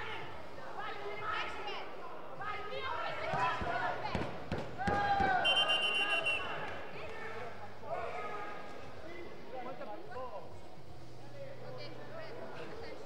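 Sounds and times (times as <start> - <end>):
referee's whistle trilling: 5.4 - 6.6.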